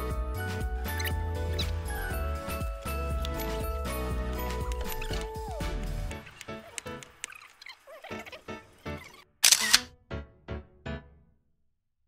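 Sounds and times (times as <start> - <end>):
soft piano-like music: 0.0 - 9.3, 9.9 - 11.4
camera shutter click effect: 9.4 - 9.9.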